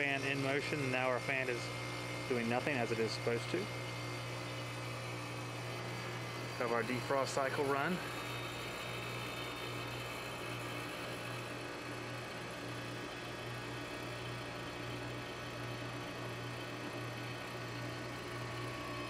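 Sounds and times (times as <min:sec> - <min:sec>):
compressor humming: 0:00.0 - 0:19.0.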